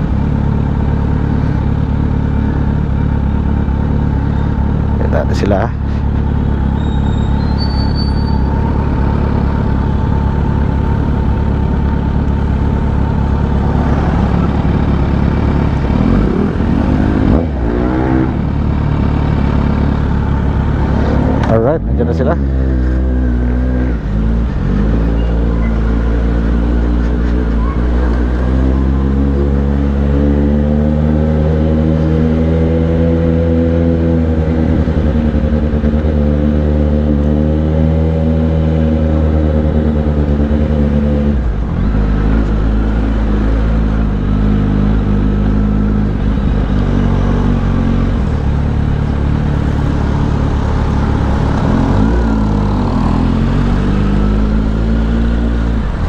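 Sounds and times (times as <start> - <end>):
motorcycle engine at low speed: 0.0 - 56.0.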